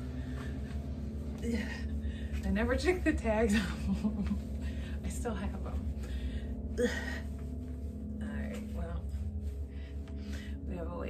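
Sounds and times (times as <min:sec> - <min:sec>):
steady low hum: 0:00.0 - 0:11.0
woman gasping: 0:06.0 - 0:07.5.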